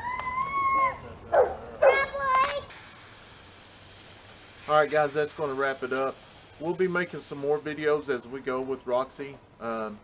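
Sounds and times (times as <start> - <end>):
steady hiss: 1.9 - 10.0.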